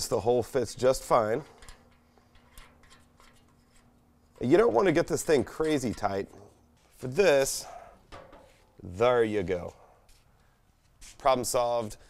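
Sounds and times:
faint steady hum: 0.0s - 12.0s
faint metallic clicks and rubbing: 1.4s - 4.5s.

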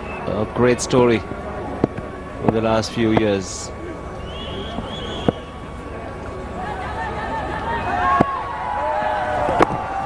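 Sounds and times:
faint voices: 0.0s - 10.0s
cricket ball cracking off bat: 9.5s - 9.9s.

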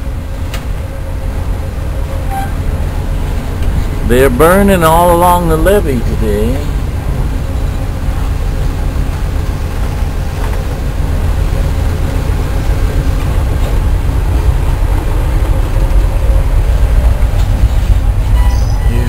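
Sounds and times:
low rumble of moving train: 0.0s - 19.0s.

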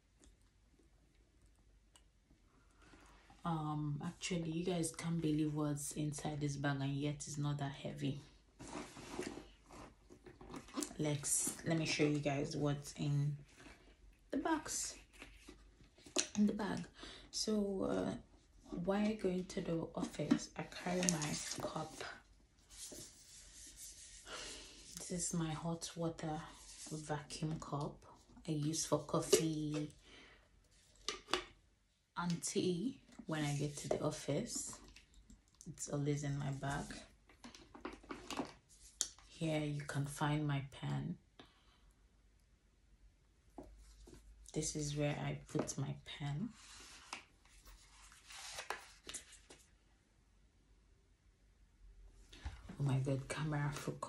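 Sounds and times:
things rustling in a leather bag: 8.5s - 12.3s.

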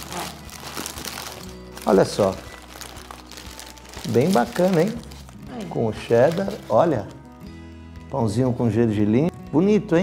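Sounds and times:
paper wrappers crinkling: 0.0s - 7.4s
faint background music: 0.0s - 10.0s.

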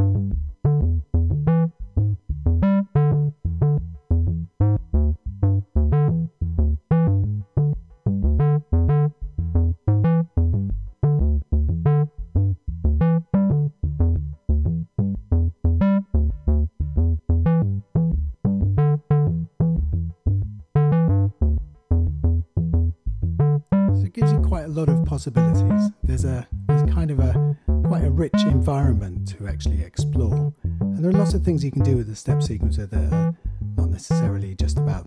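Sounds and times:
bass-heavy synth notes: 0.0s - 35.0s.

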